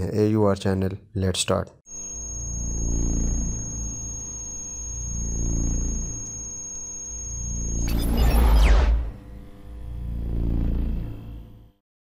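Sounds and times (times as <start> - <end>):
high-pitched electronic whine: 1.9 - 11.8
deep synthesized drone: 7.4 - 11.7.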